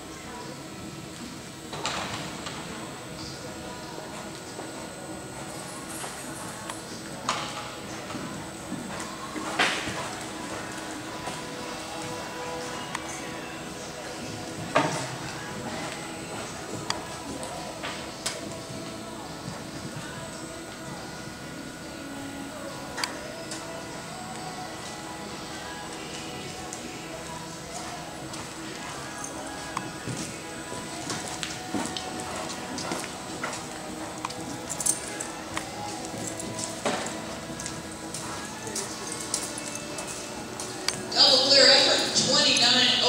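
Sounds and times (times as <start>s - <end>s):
background music: 1.3s - 43.0s
voices: 2.7s - 43.0s
horse hoofbeats: 29.5s - 42.7s.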